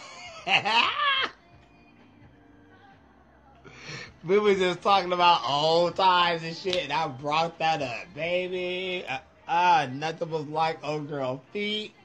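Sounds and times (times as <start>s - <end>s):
man laughing high-pitched: 0.0s - 1.4s.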